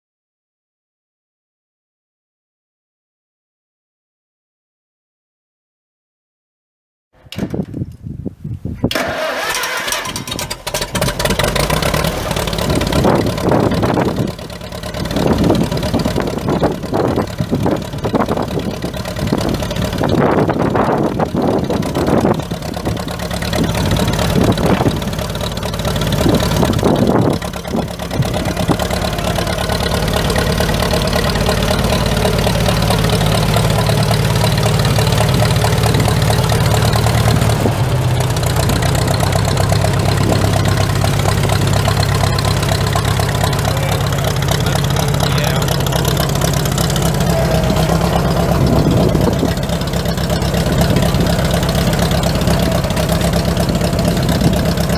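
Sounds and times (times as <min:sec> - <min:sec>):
tractor engine starting and idling: 0:08.8 - 0:54.9.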